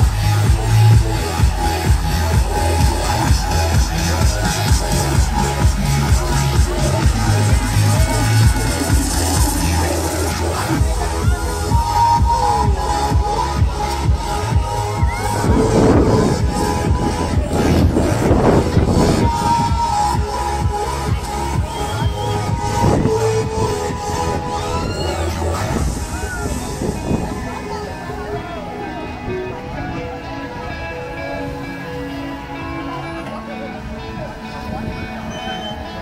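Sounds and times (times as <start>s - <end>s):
electronic dance music: 0.0s - 36.0s.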